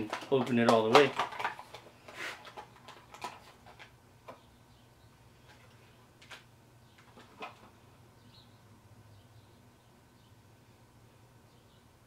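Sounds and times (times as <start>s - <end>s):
plastic packaging rustling: 0.0s - 3.9s.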